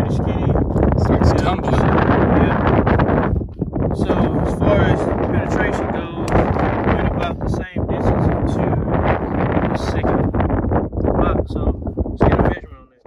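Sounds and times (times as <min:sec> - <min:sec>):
wind buffeting microphone: 0:00.0 - 0:12.9
person talking indistinctly: 0:00.0 - 0:13.0.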